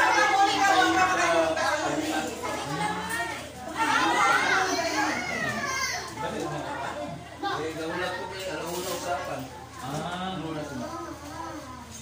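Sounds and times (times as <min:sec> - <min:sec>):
adults talking: 0:00.0 - 0:12.0
children shouting and chattering: 0:00.0 - 0:12.0.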